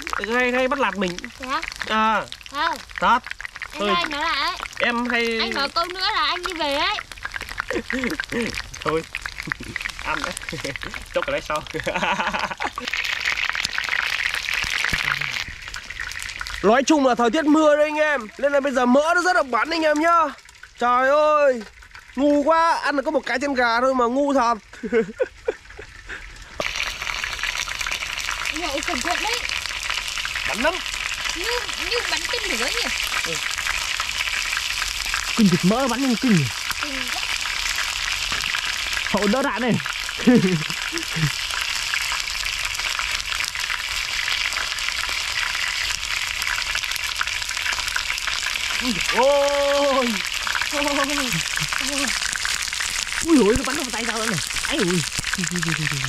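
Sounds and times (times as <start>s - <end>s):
fat spattering and popping: 0.0s - 20.8s, 21.5s - 22.2s, 25.2s - 56.0s
chicken frying in hot oil: 0.0s - 56.0s.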